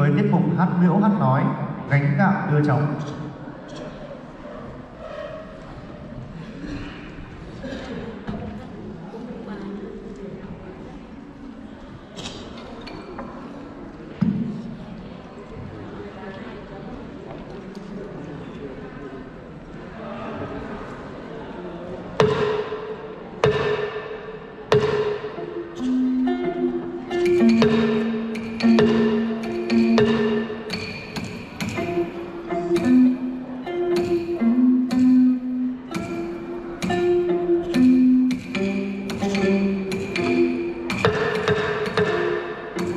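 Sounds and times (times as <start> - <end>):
drum stroke ringing: 22.2 - 42.9
long-necked lute notes: 22.2 - 42.9
bamboo clappers clicking: 33.9 - 42.9.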